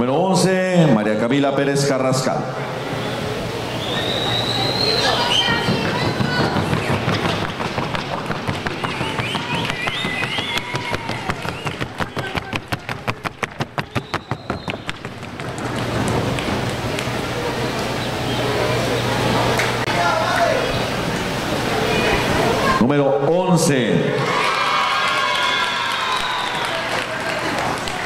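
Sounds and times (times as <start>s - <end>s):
horse hooves on hard board: 5.6s - 16.8s.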